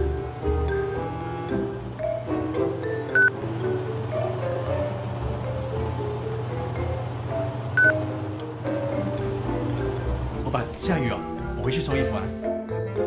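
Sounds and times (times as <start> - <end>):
light background music: 0.0 - 13.0
air conditioner beeps: 2.0 - 3.4, 6.6 - 8.1.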